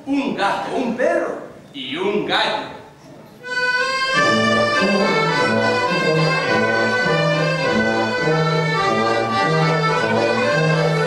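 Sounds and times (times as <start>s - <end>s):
low bass notes: 4.1s - 11.0s.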